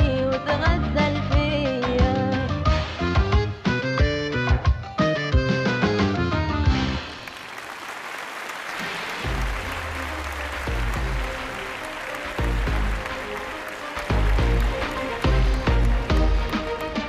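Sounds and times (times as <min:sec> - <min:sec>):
audience applauding in a hall: 0:07.0 - 0:17.0
music with deep bass notes: 0:14.1 - 0:17.0.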